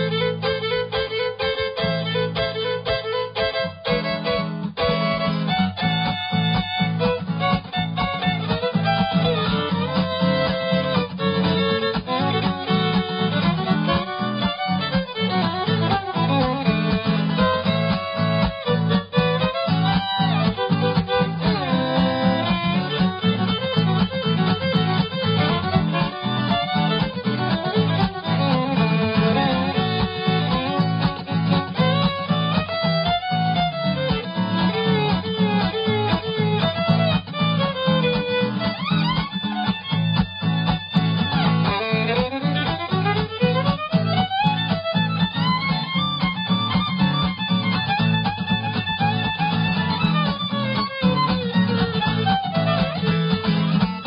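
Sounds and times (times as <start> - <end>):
fiddle sliding in pitch: 0.0 - 54.0
guitar strumming rhythm: 0.0 - 54.0.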